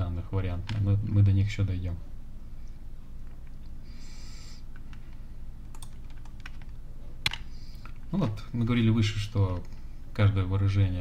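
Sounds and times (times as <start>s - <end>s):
steady low hum: 0.0s - 11.0s
keyboard and mouse clicks: 5.7s - 8.0s.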